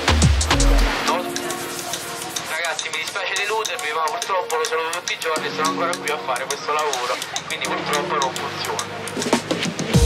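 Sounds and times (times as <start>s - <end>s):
wind and water rushing past boat: 0.0s - 10.0s
person speaking: 1.0s - 9.0s.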